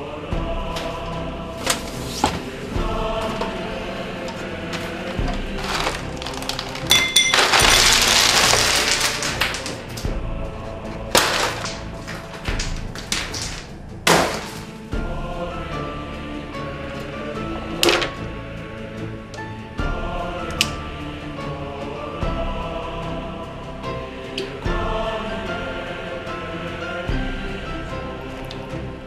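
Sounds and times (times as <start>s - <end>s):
background music: 0.0s - 29.0s
ice cubes clattering onto countertop: 5.6s - 9.9s, 11.2s - 14.5s.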